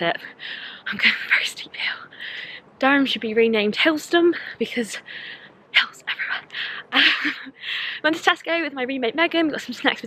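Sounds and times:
woman panting: 0.3s - 0.9s, 5.0s - 5.5s, 6.5s - 8.1s.

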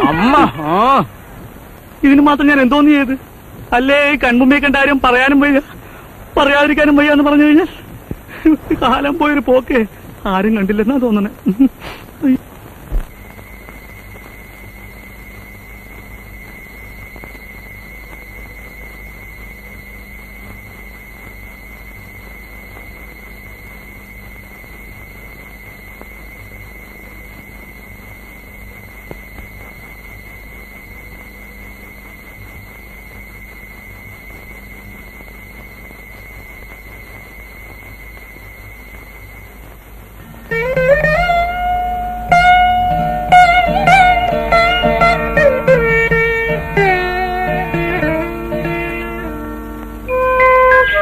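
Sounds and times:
film soundtrack hiss: 0.0s - 51.0s
high-pitched whine: 12.2s - 51.0s.

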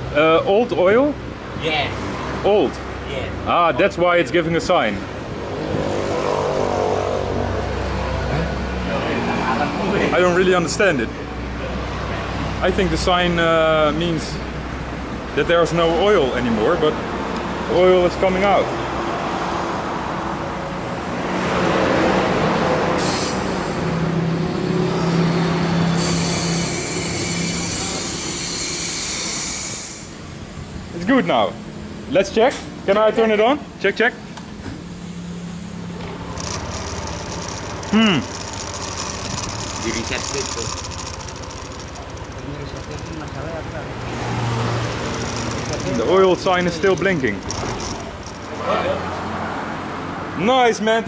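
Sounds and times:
workshop machinery humming: 34.7s - 50.1s
vehicle engine running: 34.8s - 50.1s.

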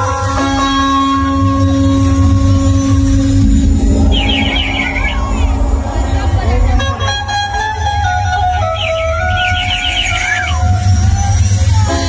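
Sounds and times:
loud bass-heavy music over speakers: 0.0s - 12.0s
high warbling figure: 2.6s - 10.7s.

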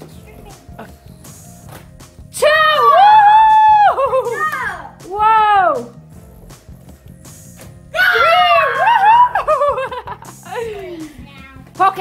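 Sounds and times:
background music with beat: 0.0s - 12.0s
child squealing: 8.0s - 9.3s.

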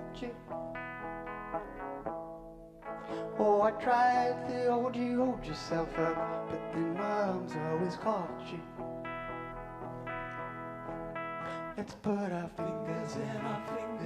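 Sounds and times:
electric guitar: 0.0s - 14.0s.

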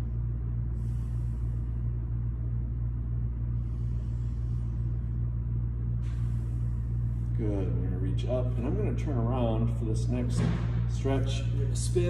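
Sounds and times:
slow deep breaths: 0.0s - 7.4s
ventilation hum: 0.0s - 12.0s.

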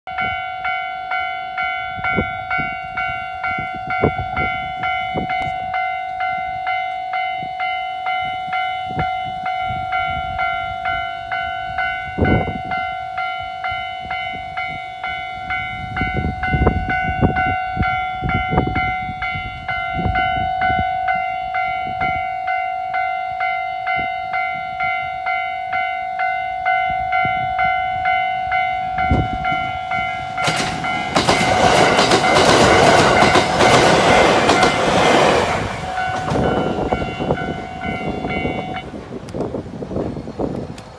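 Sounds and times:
level crossing warning bell clanging: 0.1s - 40.4s.

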